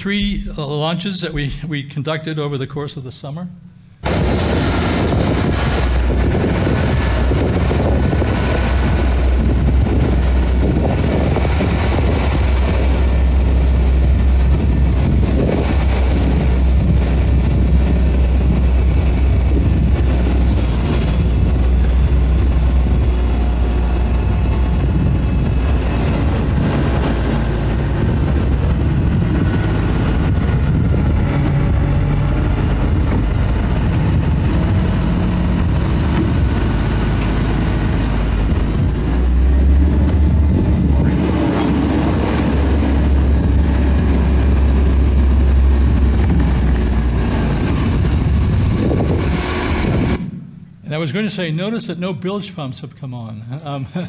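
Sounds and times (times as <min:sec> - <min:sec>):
diesel engine droning: 0:04.0 - 0:50.8.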